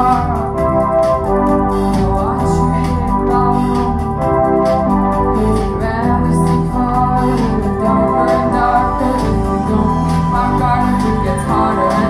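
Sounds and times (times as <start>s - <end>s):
keyboard chords: 0.0s - 12.0s
steady bass: 0.0s - 12.0s.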